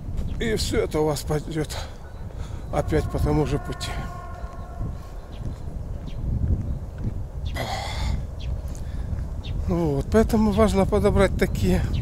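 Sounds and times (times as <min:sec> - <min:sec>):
wind rumbling on microphone: 0:00.0 - 0:12.0
man breathing: 0:02.3 - 0:02.7.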